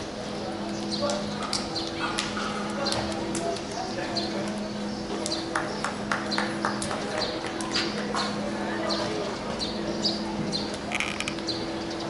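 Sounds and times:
faint voices: 0.0 - 12.0
sharp claps or clicks: 5.2 - 8.4.

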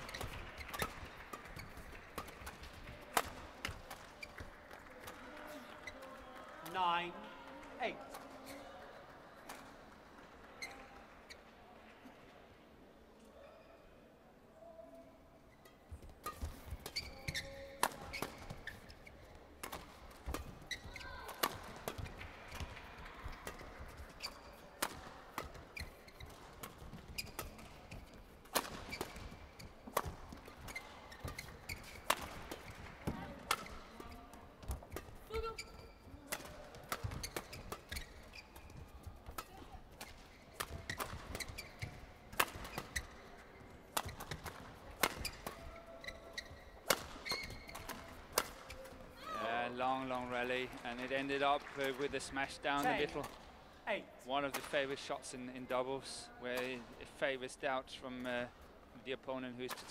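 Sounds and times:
racket hitting shuttlecock: 0.0 - 5.2, 15.6 - 49.2
shoes squeaking on court: 0.0 - 6.7, 15.5 - 50.2.

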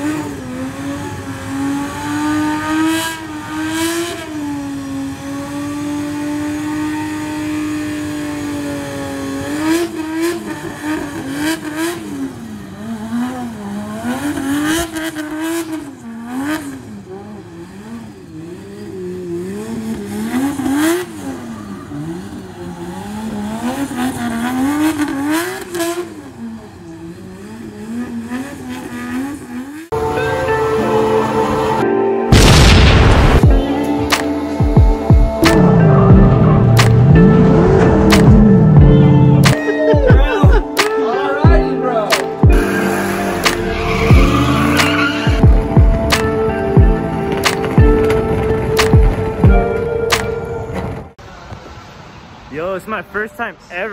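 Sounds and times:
car engine revving hard: 0.0 - 39.6, 42.5 - 49.4
music: 30.0 - 51.0
tyre noise: 42.4 - 51.7.

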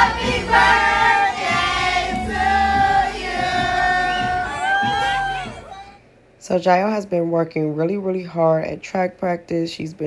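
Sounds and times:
choir singing long notes: 0.0 - 5.7.

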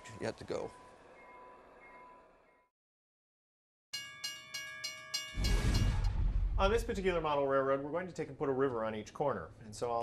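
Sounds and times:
railroad crossing bell ringing: 0.0 - 2.7, 3.9 - 6.0.

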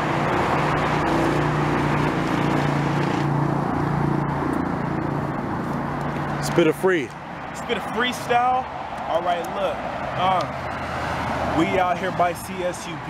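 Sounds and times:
road traffic engine hum: 0.0 - 13.0.

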